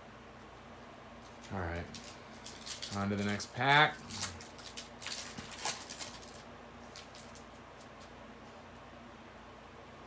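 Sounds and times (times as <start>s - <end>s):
foil wrapper crinkling: 1.2s - 8.0s.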